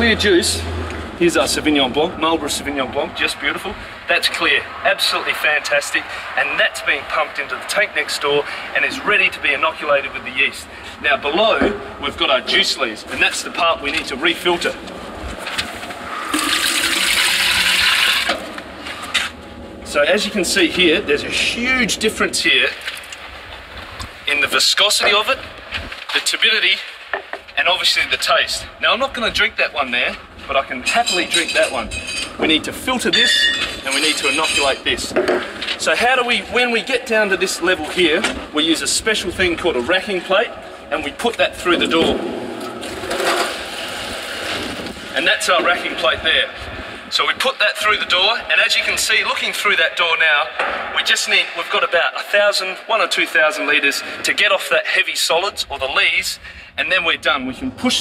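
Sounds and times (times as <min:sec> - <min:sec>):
liquid gushing into plastic jug: 0:16.2 - 0:18.3.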